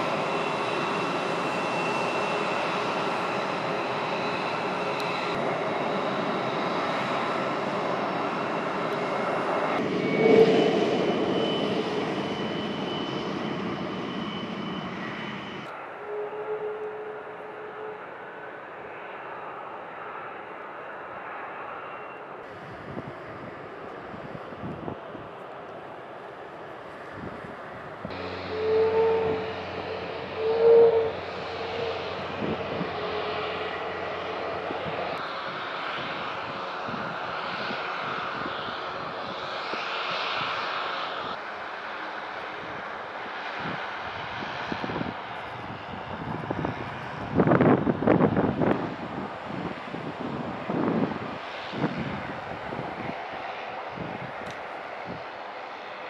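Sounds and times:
jet engines rumbling and whining: 0:00.0 - 0:56.0.

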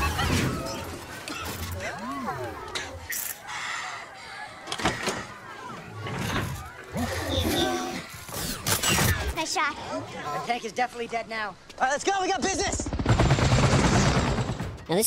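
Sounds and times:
voices: 0:00.0 - 0:12.8.

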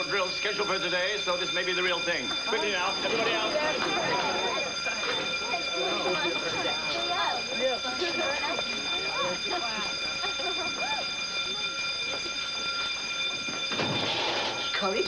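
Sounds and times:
fire alarm high-pitched tone: 0:00.0 - 0:15.0
children chattering: 0:02.5 - 0:12.6.

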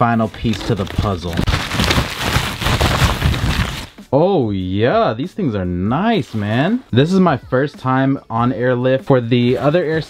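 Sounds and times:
bubble wrap crackling: 0:00.3 - 0:03.9.

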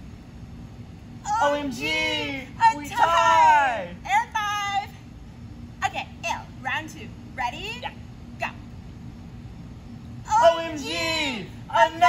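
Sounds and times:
low background hum: 0:00.0 - 0:12.0
person shouting: 0:01.3 - 0:04.0.

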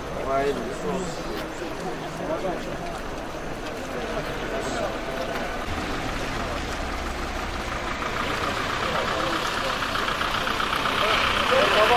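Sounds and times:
traffic on wet road: 0:00.0 - 0:11.9
vehicle engines idling: 0:00.0 - 0:11.9.

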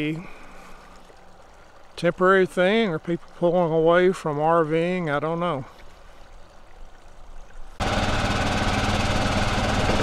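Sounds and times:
vehicle engine running: 0:07.8 - 0:10.0.

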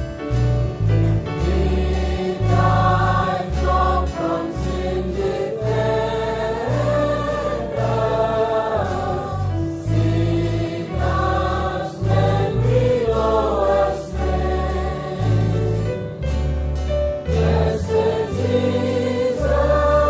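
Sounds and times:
deep bass accompaniment: 0:00.0 - 0:20.0
choir singing slow song: 0:01.4 - 0:16.2, 0:17.3 - 0:20.0.

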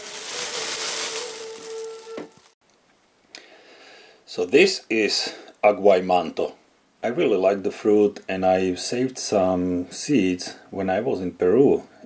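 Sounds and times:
plastic bag crinkling: 0:00.0 - 0:02.6.

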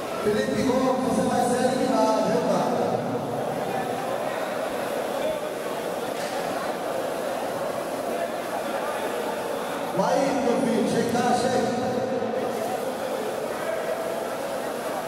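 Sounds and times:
murmur of many voices: 0:00.0 - 0:15.0
man's voice: 0:00.2 - 0:02.9, 0:10.0 - 0:11.9.

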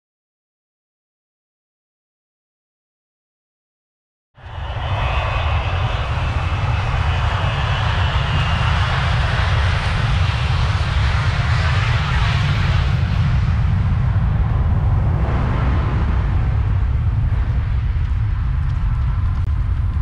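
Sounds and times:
jet engine roaring: 0:04.4 - 0:20.0
wind buffeting microphone: 0:04.4 - 0:20.0.

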